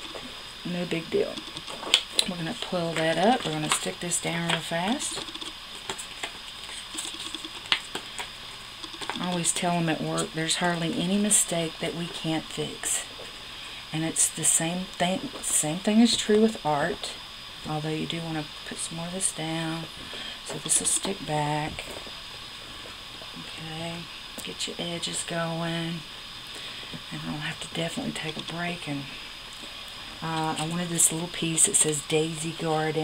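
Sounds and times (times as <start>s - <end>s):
small ticks: 1.3s - 2.1s, 5.1s - 9.5s.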